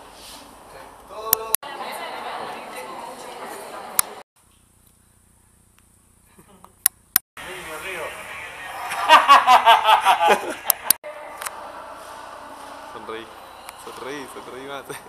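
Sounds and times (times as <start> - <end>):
person laughing: 8.8 - 11.0.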